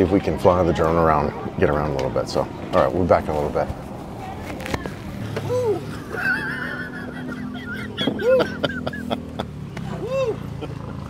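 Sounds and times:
man hooting laugh: 5.5 - 11.0
people laughing high-pitched: 5.5 - 11.0.

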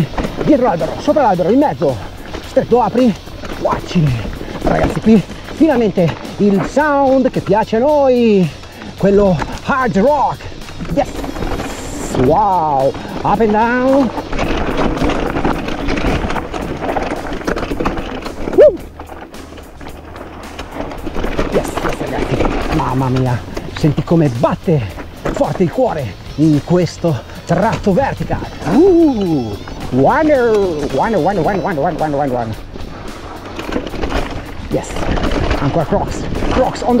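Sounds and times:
bike rattling over rocks: 0.0 - 37.0
steady low rumble: 0.0 - 37.0
tyres crunching over stones: 0.0 - 37.0
rider whooping: 18.4 - 19.0, 28.3 - 32.7.

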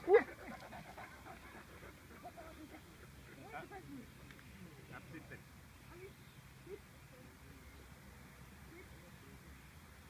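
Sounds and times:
dog panting quietly: 0.0 - 3.9.

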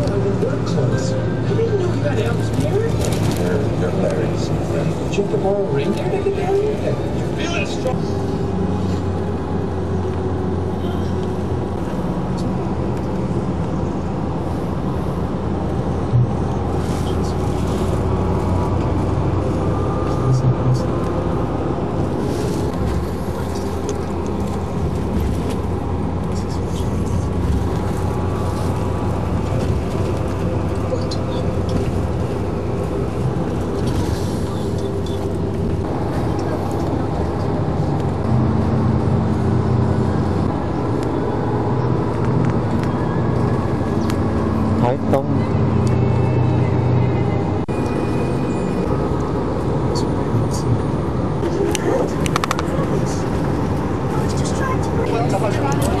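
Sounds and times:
indistinct voices talking: 0.0 - 8.3, 43.2 - 56.0
vehicle engine and road noise: 0.0 - 56.0.

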